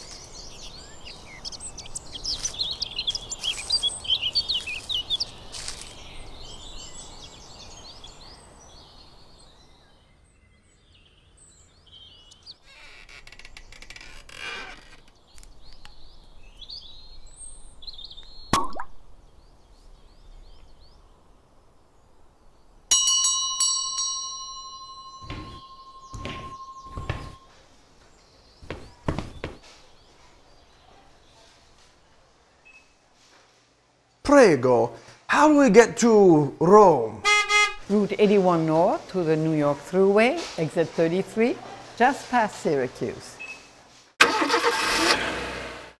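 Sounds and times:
wine glasses clinking: 22.9s - 27.5s
dull thump: 25.2s - 27.5s, 28.6s - 29.7s
car engine starting and running: 44.2s - 46.0s.

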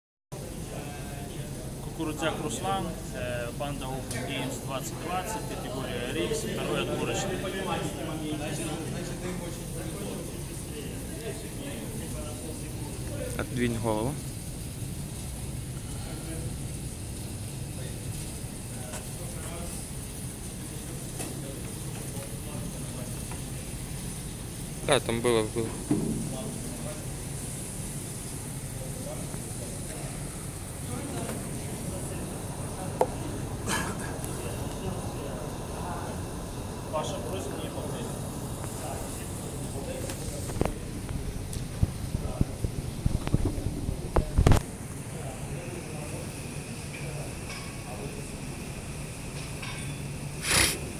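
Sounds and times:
low hum and hiss: 0.3s - 50.9s
faint voices: 28.6s - 48.5s
microphone handling: 41.6s - 44.7s.

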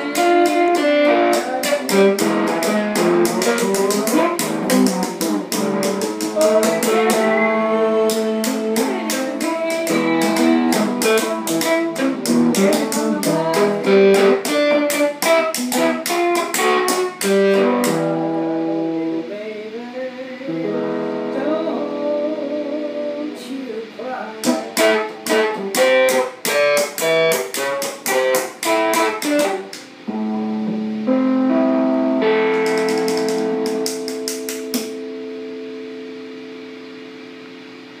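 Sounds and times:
percussive strikes on guitar strings: 0.0s - 19.1s, 24.4s - 37.6s
electric guitar chords: 0.0s - 38.0s.

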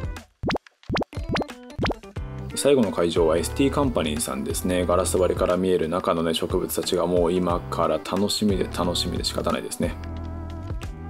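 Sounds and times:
background music: 0.0s - 11.0s
rising cartoon plops: 0.4s - 2.0s.

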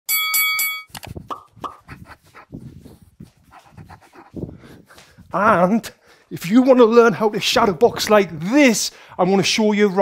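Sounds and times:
bell ringing: 0.1s - 1.0s
footwork scuffs: 1.1s - 5.7s.

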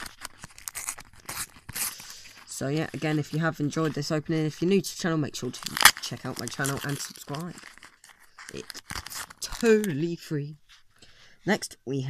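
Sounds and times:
foil packet tearing and crinkling: 0.0s - 3.8s, 5.4s - 10.1s.

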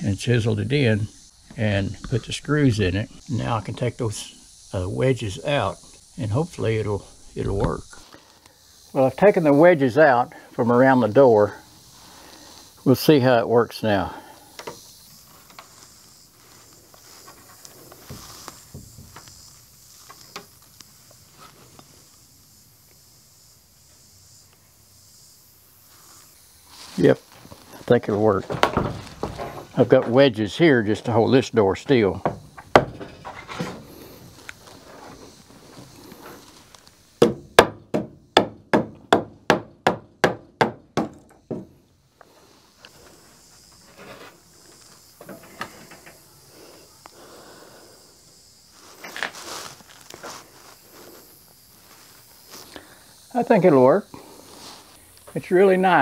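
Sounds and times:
steady high hiss: 0.0s - 56.0s
wooden door knocks and clicks: 28.5s - 29.6s
hammer tapping on wood: 37.2s - 41.7s.

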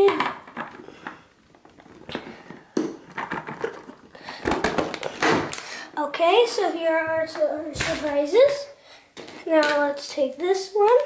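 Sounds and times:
plastic clicks and knocks: 0.0s - 5.6s.

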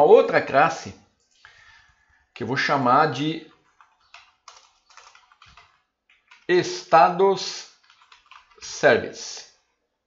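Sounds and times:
faint computer keystrokes: 3.8s - 6.5s, 7.8s - 8.6s.

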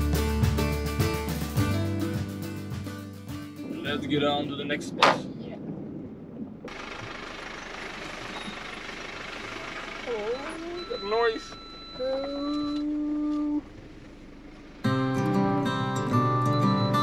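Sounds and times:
road and engine noise in van: 0.0s - 17.0s.

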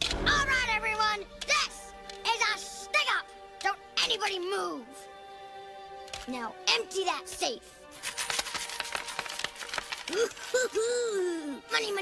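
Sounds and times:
coins pouring and clattering: 8.0s - 10.6s.

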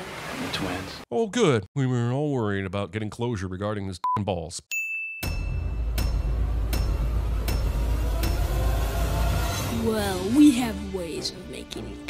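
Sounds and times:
sharp metallic hit: 5.2s - 9.9s.

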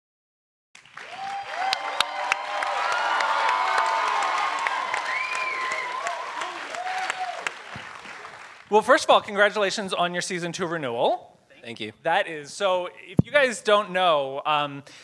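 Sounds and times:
audience applauding: 0.8s - 9.0s
whoops: 1.0s - 7.6s.

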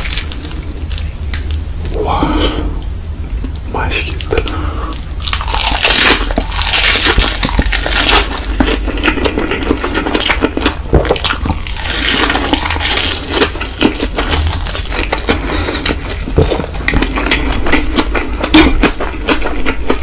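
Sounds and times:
crisp crunching while eating: 0.0s - 2.4s, 4.2s - 20.0s
wet chewing: 4.2s - 20.0s.

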